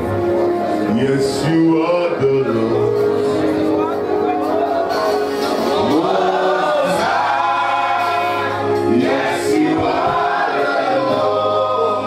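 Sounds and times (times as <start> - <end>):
congregation singing: 0.9 - 12.0.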